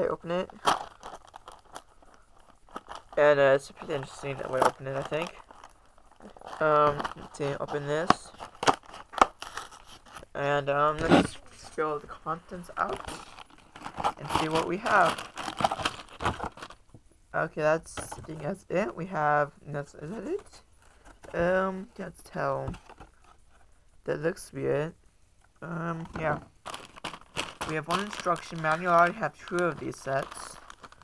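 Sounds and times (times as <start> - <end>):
plastic bags crinkling: 0.0 - 16.8, 26.2 - 31.0
cardboard box crackling: 0.4 - 16.8, 26.2 - 31.0.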